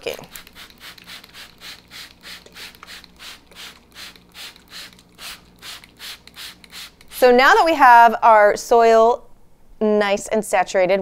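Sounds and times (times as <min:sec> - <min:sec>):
spray bottle squirting: 0:00.1 - 0:07.3.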